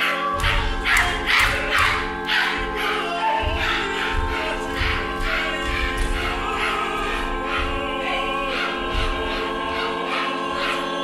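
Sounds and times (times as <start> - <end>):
held chord: 0.0 - 11.0
low drum beats: 0.4 - 9.6.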